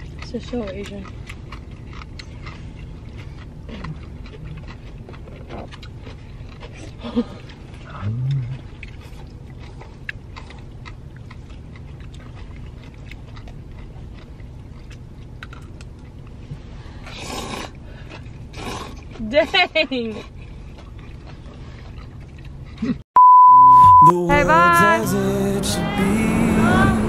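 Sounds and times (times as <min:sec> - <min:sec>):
chewing and slurping noodles: 0:00.0 - 0:23.0
person murmuring mm: 0:07.9 - 0:08.6
low car cabin rumble: 0:24.3 - 0:27.0.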